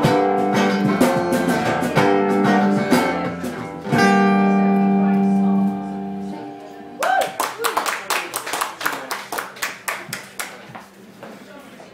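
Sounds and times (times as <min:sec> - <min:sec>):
audience clapping: 0:07.0 - 0:10.9.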